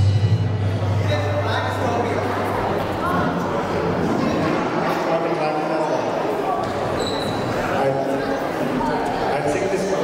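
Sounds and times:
voices talking in a hall: 0.0s - 10.0s.

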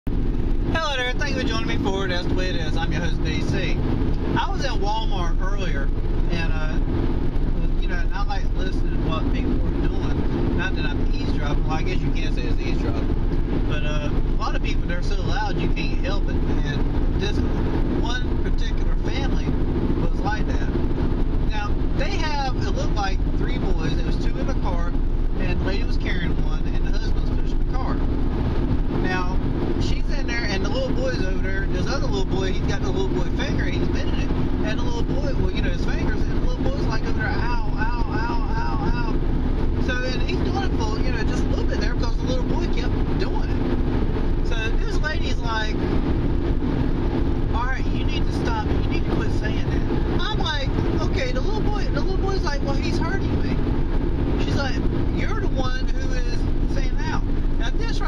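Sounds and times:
car cabin road noise: 0.0s - 58.0s.

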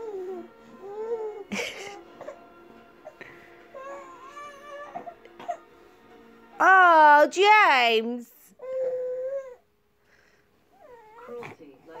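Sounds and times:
baby whining and fussing: 0.0s - 5.8s, 8.4s - 9.7s, 10.7s - 12.0s.

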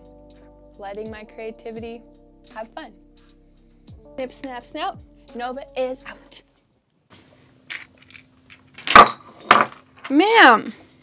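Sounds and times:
metallic jingles: 8.0s - 10.2s.

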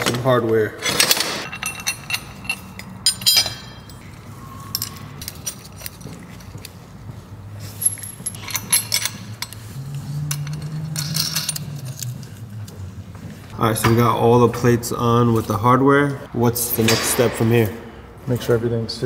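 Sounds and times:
bolts clinking on steel plates: 0.0s - 6.7s, 7.8s - 12.3s.

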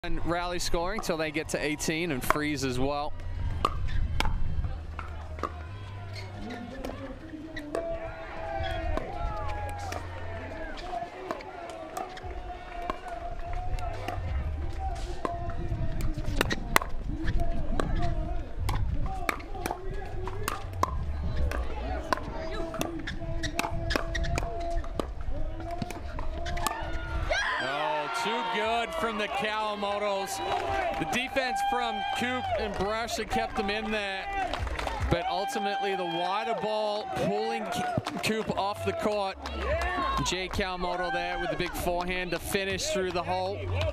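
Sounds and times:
paddles striking plastic ball: 18.6s - 26.8s.

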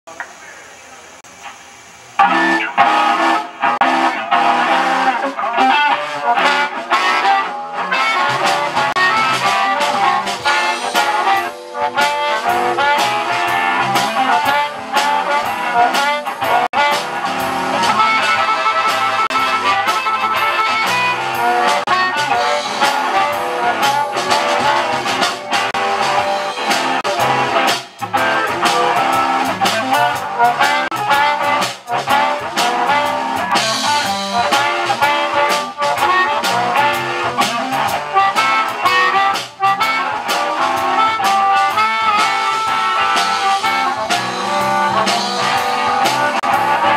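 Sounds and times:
harmonica lead: 2.2s - 46.9s
live band playing instrumental: 2.2s - 46.9s.

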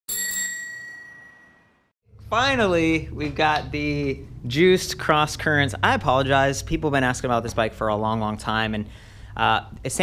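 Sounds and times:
bell ding ringing: 0.1s - 1.9s.

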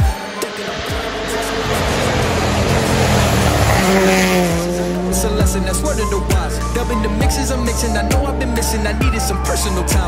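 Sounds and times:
rally car engine approaching: 0.0s - 7.7s
hip-hop backing track: 0.0s - 10.0s.

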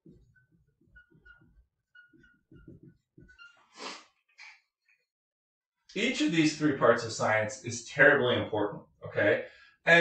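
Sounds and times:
marker writing on whiteboard: 0.8s - 3.6s.

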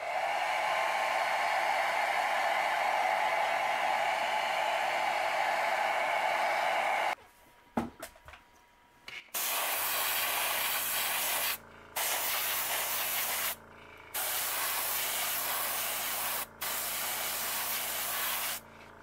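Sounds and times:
airbrush hissing: 9.4s - 13.6s, 14.2s - 18.6s.

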